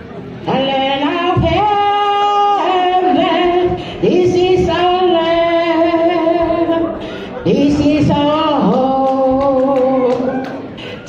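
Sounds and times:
woman singing into a microphone: 0.4s - 11.0s.

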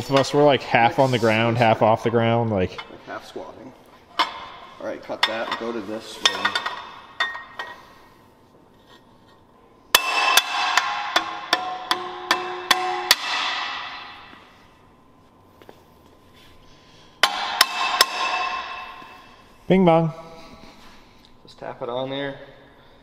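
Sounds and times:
hammer tapping metal plate: 10.0s - 14.4s, 17.2s - 19.2s.

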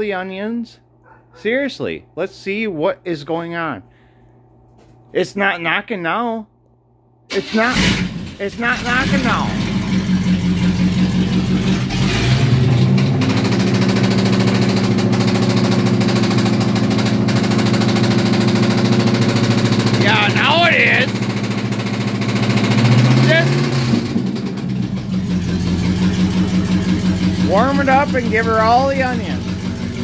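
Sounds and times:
car engine revving: 7.4s - 30.0s.

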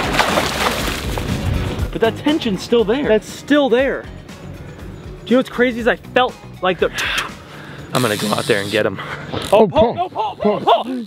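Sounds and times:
fishing reel drag clicking: 8.0s - 9.6s.

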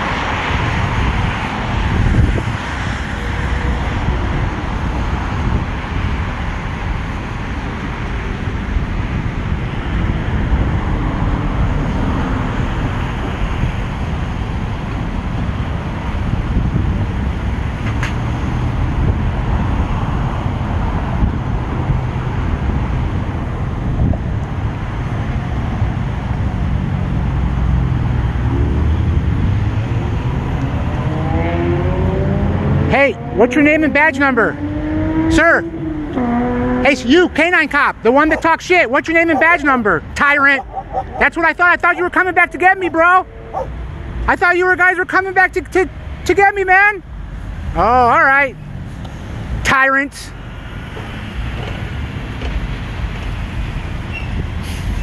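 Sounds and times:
rumble of passing cars: 0.0s - 55.0s
vehicle engine speeding up: 26.7s - 44.3s.

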